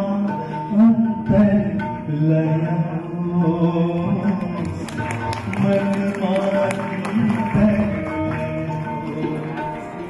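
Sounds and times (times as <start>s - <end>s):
man singing: 0.0s - 10.0s
tabla: 0.0s - 10.0s
violin: 3.2s - 10.0s.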